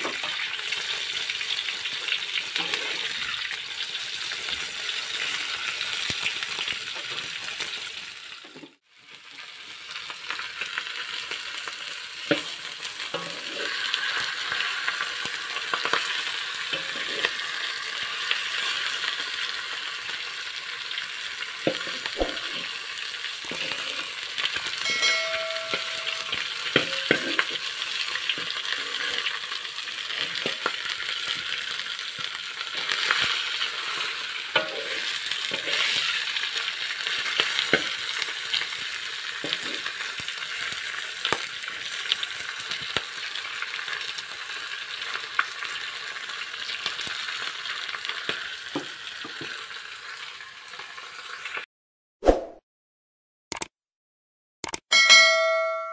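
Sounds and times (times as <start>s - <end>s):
fish sizzling in oil: 0.0s - 51.7s
metal spatula scraping pan: 2.6s - 3.5s, 12.3s - 14.8s, 16.7s - 17.6s, 21.7s - 30.9s, 32.8s - 36.4s, 39.4s - 39.9s.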